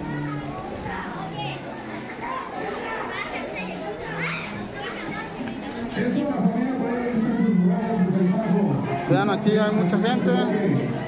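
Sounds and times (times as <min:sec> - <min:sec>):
children shouting and playing: 0:00.0 - 0:11.0.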